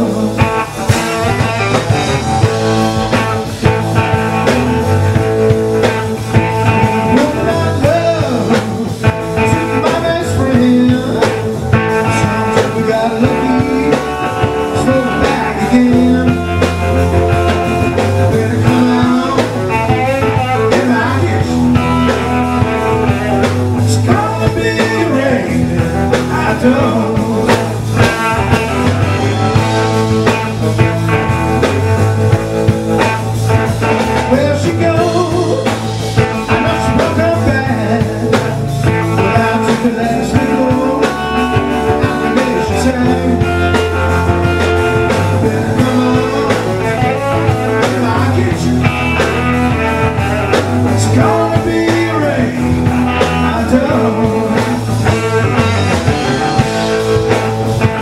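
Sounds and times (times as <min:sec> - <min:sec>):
blues band playing: 0:00.0 - 0:58.0.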